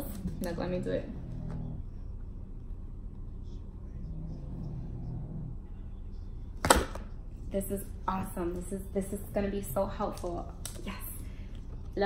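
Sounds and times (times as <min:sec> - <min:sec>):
faint low hum: 0:00.0 - 0:12.0
low background rumble: 0:00.0 - 0:12.0.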